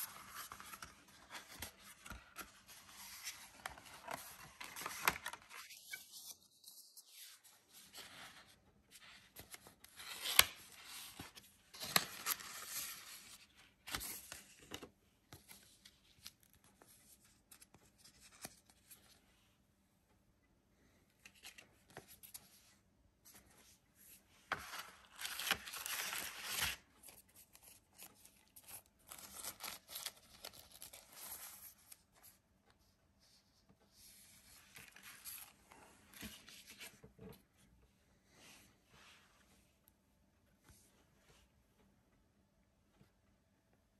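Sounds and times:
cardboard and paper rustling: 0.0 - 19.2, 23.3 - 32.4, 34.1 - 37.4.

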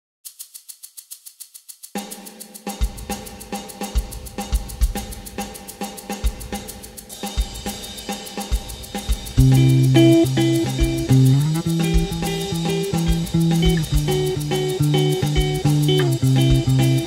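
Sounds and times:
hi-hat ticks: 0.2 - 17.0
snare and kick drum groove: 1.9 - 17.0.

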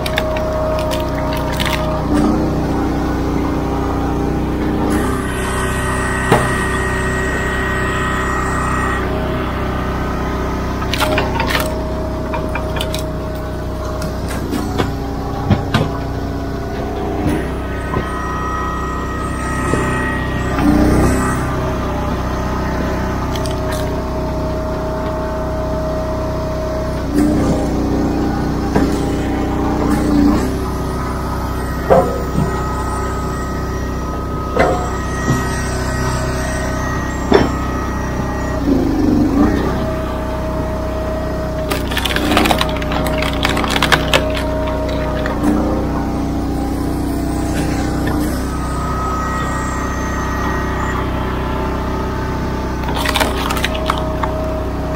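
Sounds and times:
wood pieces dropping on steel: 0.0 - 2.0, 10.8 - 13.1, 41.7 - 45.5, 52.8 - 54.3
wood splitting cracks: 0.0 - 2.1, 10.8 - 13.1, 41.6 - 45.6, 52.8 - 54.4
log splitter engine running: 0.0 - 54.9.

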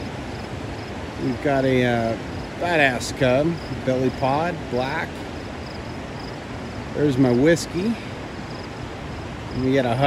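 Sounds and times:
faint high insect chirp: 0.0 - 10.0
outdoor background noise: 0.0 - 10.0.

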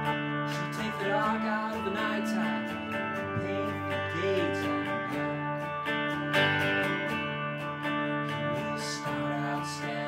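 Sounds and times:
electric guitar strumming: 0.0 - 10.0
organ chords: 0.0 - 10.0.

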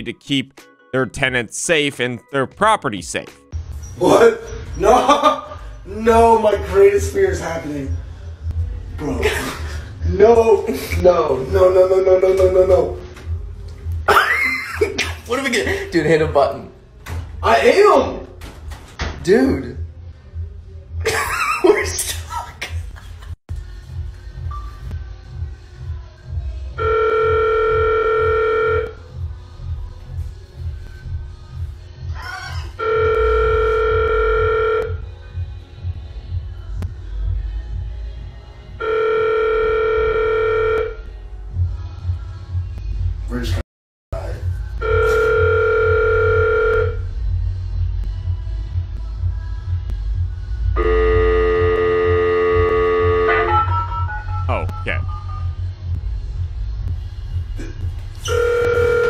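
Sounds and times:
background music with pulsing bass: 44.2 - 59.0
lift alarm buzzer: 50.8 - 54.5, 58.3 - 59.0
elevator emergency call tone: 50.8 - 55.6.

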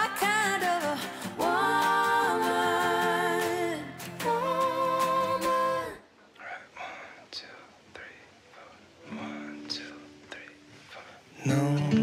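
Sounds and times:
person whispering: 6.3 - 11.4.

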